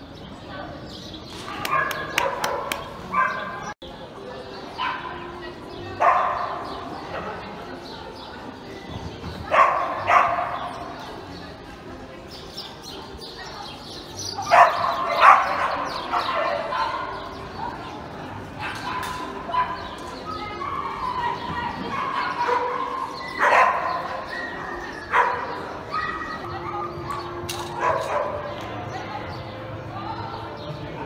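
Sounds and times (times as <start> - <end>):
dog barking: 1.6 - 3.7, 6.0 - 6.6, 9.5 - 10.8, 14.4 - 17.3, 21.9 - 28.6.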